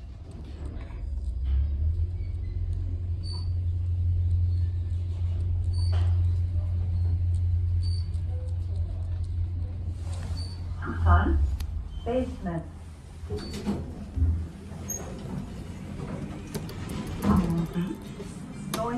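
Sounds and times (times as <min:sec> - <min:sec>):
elevator car rumbling: 0:00.0 - 0:18.9.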